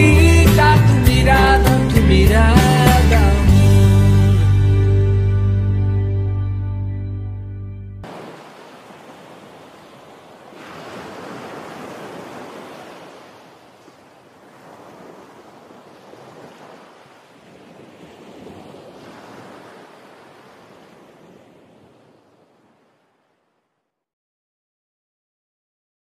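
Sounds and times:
ocean surf on sandy beach: 8.0 - 23.7.

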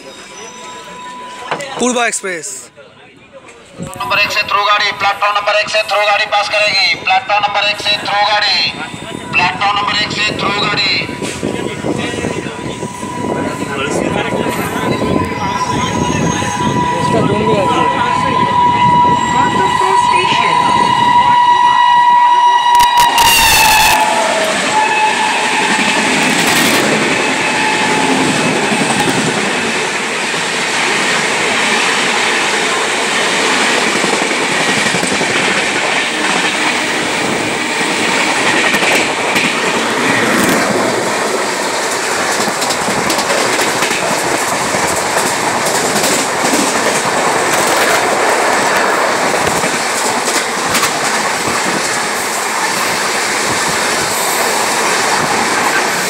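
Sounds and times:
train horn falling in pitch: 16.5 - 29.1
wheels clacking over rail joints: 33.4 - 56.0.

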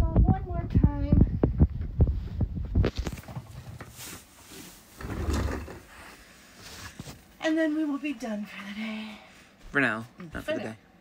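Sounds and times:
shuffling on carpet: 2.0 - 5.0.

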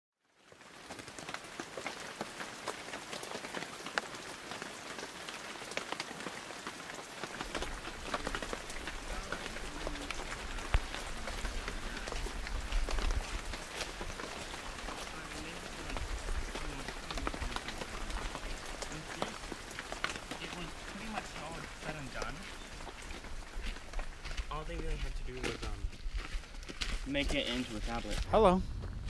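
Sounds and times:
light rain pattering: 0.2 - 29.0
low wind rumble: 7.4 - 21.8, 22.5 - 29.0.

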